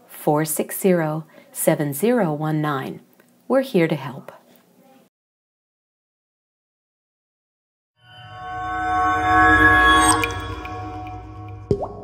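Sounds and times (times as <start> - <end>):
synthesized musical chord: 8.0 - 12.0
water drop plop: 11.0 - 12.0.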